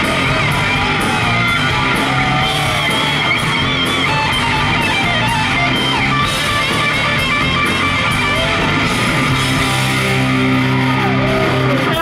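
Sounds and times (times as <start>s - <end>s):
hard rock band playing: 0.0s - 12.0s.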